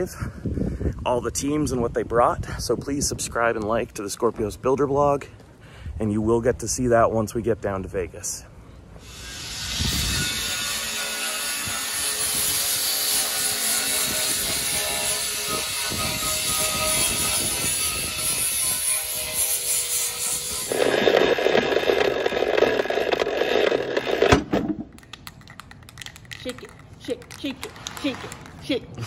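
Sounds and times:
angle grinder grinding metal: 9.0 - 24.4.

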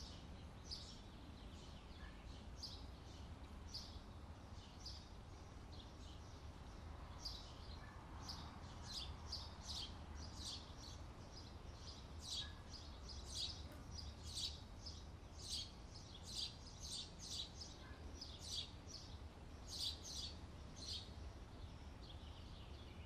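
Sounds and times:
small birds chirping: 0.0 - 23.0.

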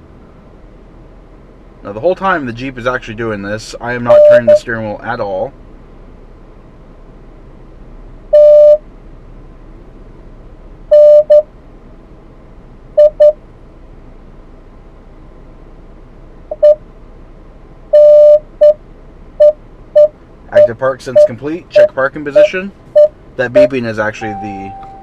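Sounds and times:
parking sensor beeps: 4.1 - 4.7, 8.3 - 8.8, 10.9 - 11.5, 13.0 - 13.4, 16.5 - 16.8, 17.9 - 18.8, 19.4 - 25.0.

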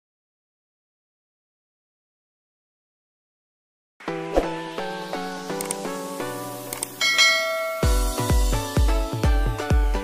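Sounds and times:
bright bell-like ding: 7.0 - 8.3.

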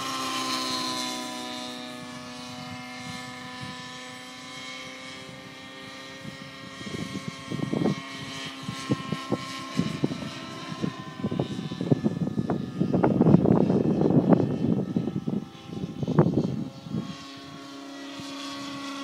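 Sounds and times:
model helicopter rotor whine: 0.0 - 19.0
wind buffeting microphone: 1.9 - 19.0.

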